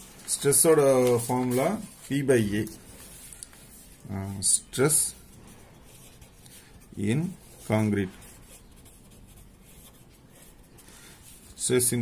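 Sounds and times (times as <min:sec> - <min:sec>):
pen scratching on paper: 0:04.9 - 0:11.5.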